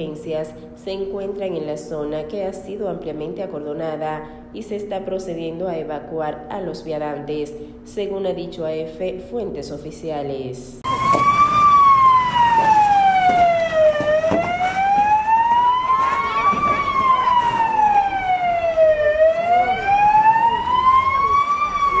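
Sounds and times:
emergency siren wailing: 10.8s - 22.0s.

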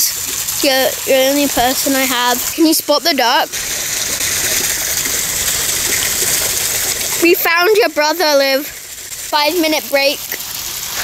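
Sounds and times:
water rushing through channel: 0.0s - 11.0s.

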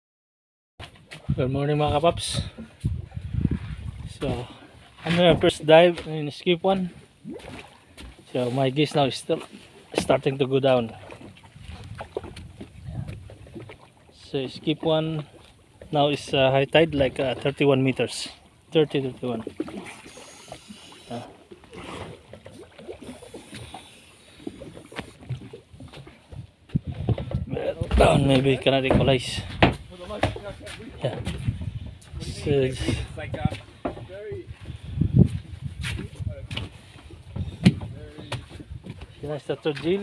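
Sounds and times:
water lapping against boat hull: 0.8s - 40.0s
light splashes and knocks: 2.8s - 8.4s, 9.3s - 18.0s, 18.8s - 32.2s, 32.8s - 34.2s, 35.2s - 40.0s.

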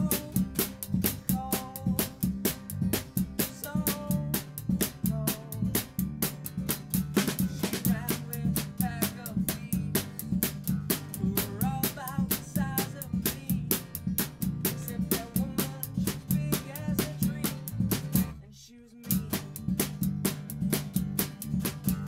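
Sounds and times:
drum kit snare and bass drum: 0.0s - 18.4s, 19.1s - 22.0s.

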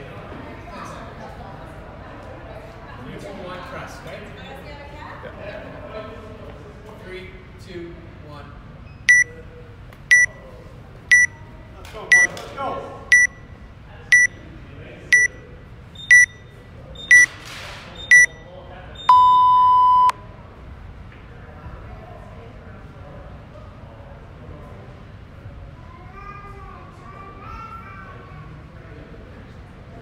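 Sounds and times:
long low timer beep: 10.1s - 10.3s, 11.1s - 11.3s, 13.1s - 13.4s, 14.1s - 14.4s, 15.2s - 15.4s, 16.0s - 17.3s, 18.1s - 18.4s, 19.0s - 20.1s
short high timer beeps: 10.1s - 10.3s, 11.1s - 11.3s, 13.1s - 13.4s, 14.1s - 14.4s, 15.2s - 15.4s, 16.0s - 17.3s, 18.1s - 18.4s, 19.0s - 20.1s.

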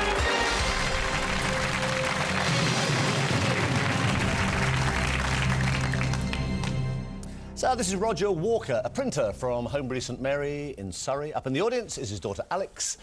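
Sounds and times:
audience applause: 0.0s - 7.0s
game show music: 0.0s - 11.4s.

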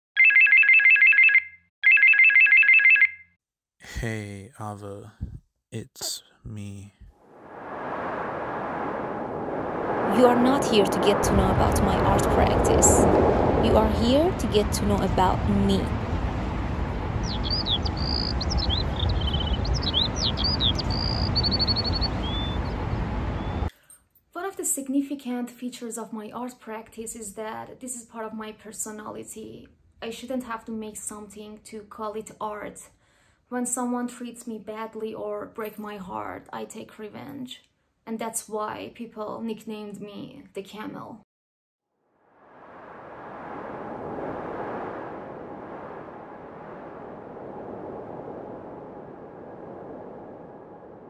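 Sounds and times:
electronic telephone ringing: 0.2s - 3.3s
city traffic rumble: 5.1s - 23.7s
small birds chirping: 17.2s - 23.7s.

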